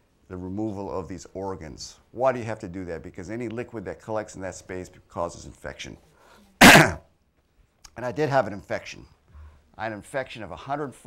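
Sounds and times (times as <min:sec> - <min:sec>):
person sneezing: 0:06.5 - 0:07.1.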